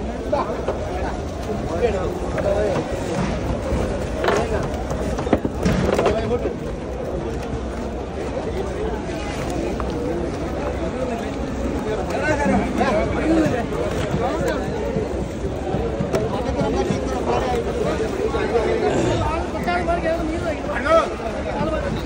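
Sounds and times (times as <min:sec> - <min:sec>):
people talking: 0:00.0 - 0:22.0.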